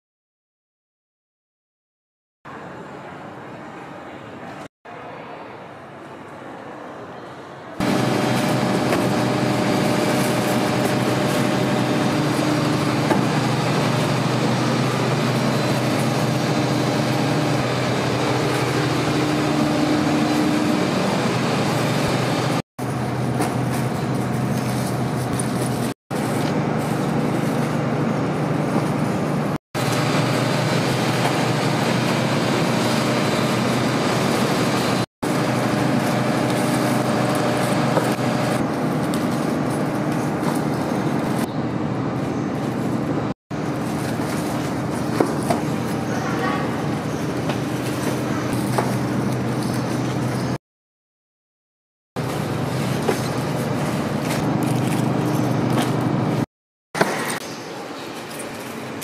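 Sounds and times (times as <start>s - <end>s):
loud machine hum: 7.8s - 50.6s, 52.2s - 58.0s.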